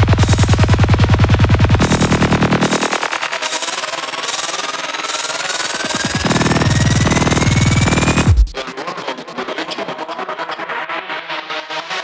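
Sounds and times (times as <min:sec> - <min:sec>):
heavy rolling bass: 0:00.0 - 0:03.1, 0:06.1 - 0:08.6
psychedelic trance music: 0:00.0 - 0:12.0
synth sweep rising in pitch: 0:05.6 - 0:08.6.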